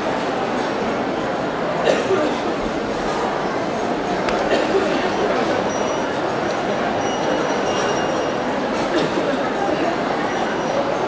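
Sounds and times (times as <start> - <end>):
crowd murmuring: 0.0 - 11.0.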